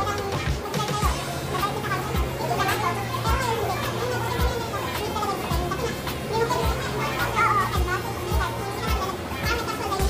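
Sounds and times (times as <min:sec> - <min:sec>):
children playing: 0:00.0 - 0:10.0
music with low beat: 0:00.0 - 0:10.0.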